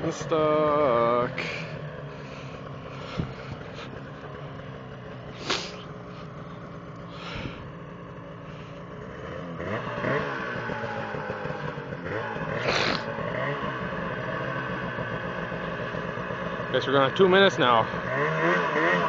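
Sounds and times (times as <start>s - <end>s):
snowmobile engine revving: 0.0s - 19.0s.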